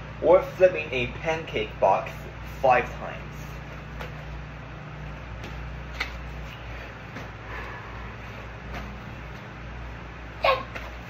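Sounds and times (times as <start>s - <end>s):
electric fan humming: 0.0s - 11.0s.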